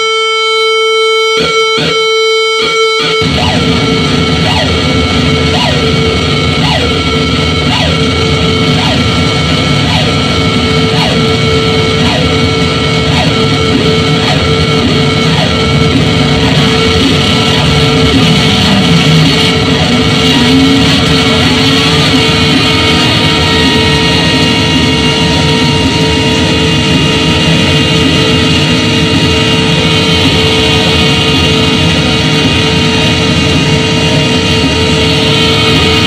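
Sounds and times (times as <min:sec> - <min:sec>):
falling electronic chirp: 0:00.0 - 0:34.4
harsh electronic noise music: 0:00.0 - 0:36.0
wavering low tone: 0:00.0 - 0:36.0.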